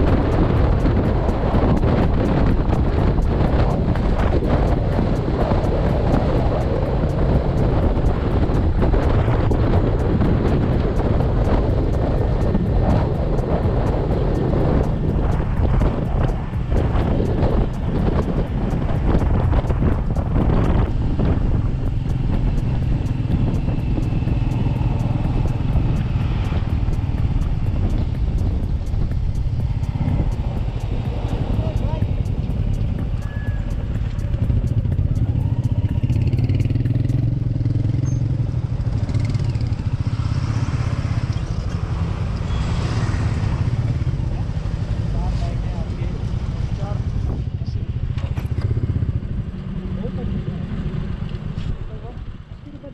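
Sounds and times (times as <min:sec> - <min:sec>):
motorcycle engine running: 0:00.0 - 0:52.9
voices: 0:29.9 - 0:36.4, 0:49.6 - 0:52.9.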